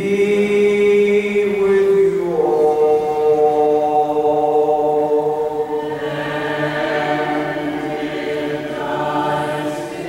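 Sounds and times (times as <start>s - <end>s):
voices chanting a hymn: 0.0s - 10.0s.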